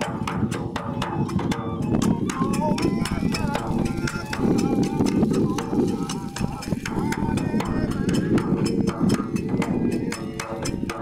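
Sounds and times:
hand cymbals striking: 0:00.0 - 0:11.0
taiko drum beat: 0:00.0 - 0:11.0.

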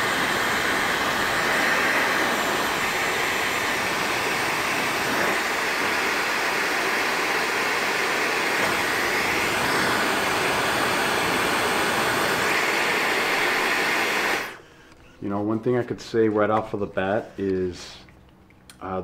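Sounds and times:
hair dryer running: 0:00.0 - 0:14.6.

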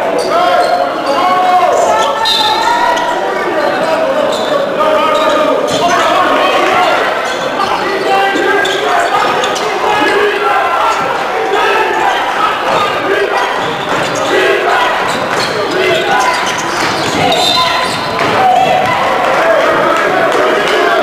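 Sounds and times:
people calling out: 0:00.0 - 0:21.0.

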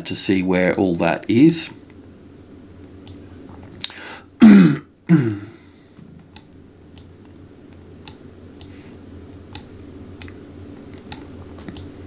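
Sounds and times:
man clearing his throat: 0:04.4 - 0:05.6
faint clicks: 0:11.0 - 0:11.9.

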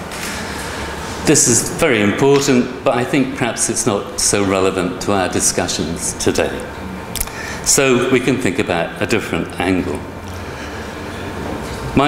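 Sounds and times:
room noise rumble and hiss: 0:00.0 - 0:12.0.

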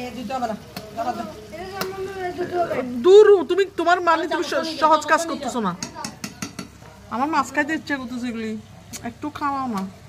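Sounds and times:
knife tapping on steel plate: 0:05.7 - 0:06.9.

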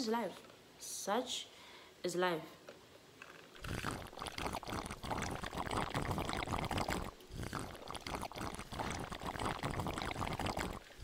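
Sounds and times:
slurping through a straw: 0:03.4 - 0:11.0.

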